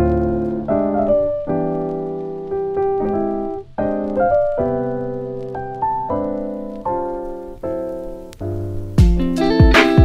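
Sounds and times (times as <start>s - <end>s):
piano chords: 0.0s - 10.0s.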